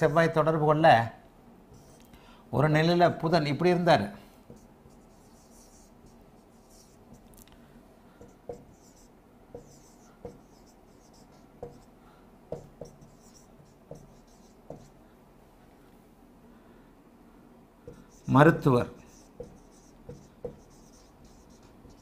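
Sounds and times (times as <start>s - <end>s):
marker squeaking on whiteboard: 1.7s - 2.1s, 4.5s - 7.3s, 8.2s - 11.9s, 12.5s - 15.0s, 17.9s - 22.0s
marker tapping on board: 4.5s - 5.9s, 8.2s - 11.9s, 12.5s - 15.0s, 17.9s - 22.0s.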